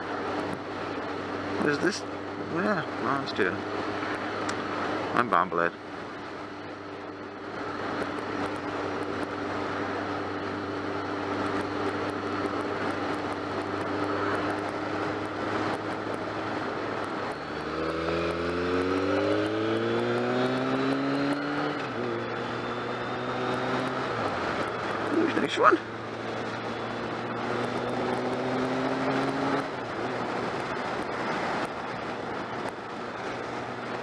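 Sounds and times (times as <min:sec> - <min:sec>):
motorcycle engine running: 0:00.0 - 0:34.0
wind and road noise: 0:00.0 - 0:34.0.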